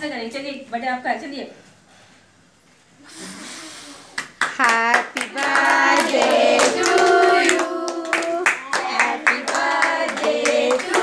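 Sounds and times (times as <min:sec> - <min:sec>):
hands clapping: 0:04.1 - 0:11.0
women and children singing: 0:04.7 - 0:11.0.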